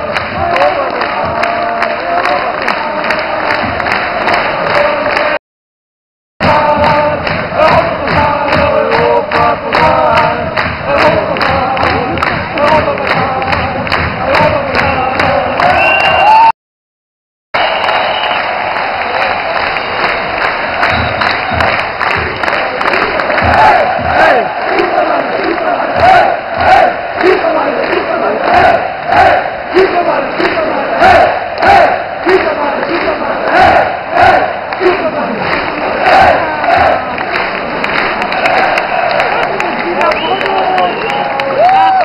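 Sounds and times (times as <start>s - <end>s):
rhythmic hand claps: 0.0s - 5.4s, 6.4s - 16.5s, 17.6s - 42.0s
stadium crowd chanting and singing: 0.0s - 5.4s, 6.4s - 16.4s, 17.6s - 42.0s.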